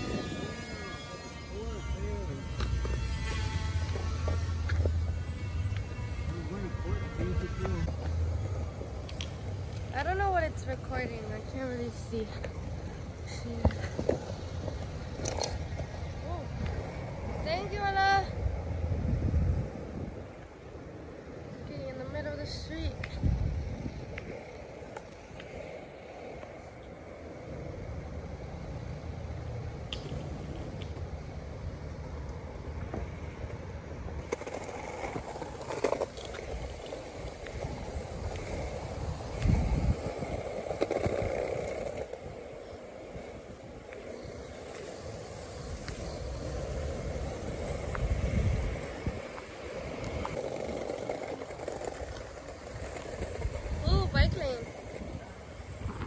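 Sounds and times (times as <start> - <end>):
skateboard wheels rolling on asphalt: 0.0 - 56.0
wind rumble on microphone: 0.0 - 56.0
skateboard wheels knocking on bumps: 2.4 - 6.6.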